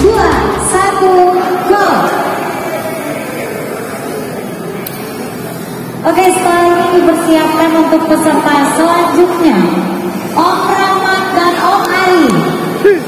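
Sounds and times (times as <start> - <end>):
crowd and hall noise: 0.0 - 13.0.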